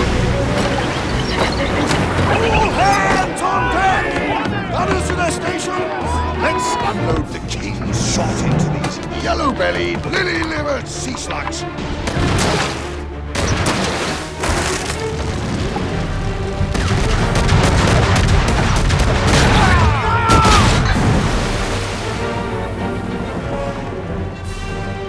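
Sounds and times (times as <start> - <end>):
orchestral music: 0.0 - 25.0
cannons booming: 12.0 - 22.3.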